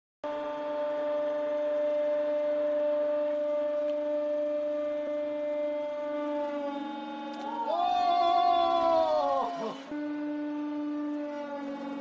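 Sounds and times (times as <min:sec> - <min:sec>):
hydraulic pump whining: 0:00.3 - 0:12.0.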